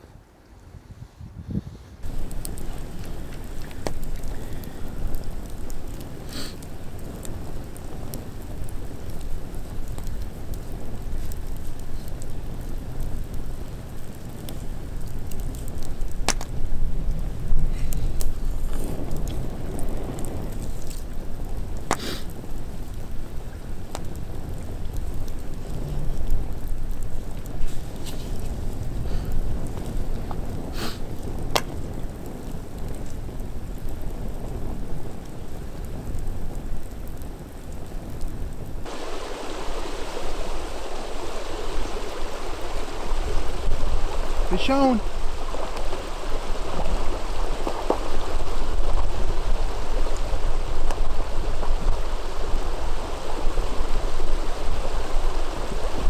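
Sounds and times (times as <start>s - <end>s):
hissy outdoor noise: 0.0s - 56.0s
wind rumbling on microphone: 0.0s - 56.0s
bonfire crackling and popping: 2.0s - 56.0s.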